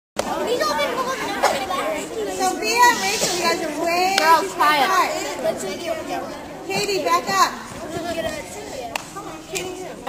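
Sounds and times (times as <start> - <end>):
girls chattering: 0.2 - 10.0.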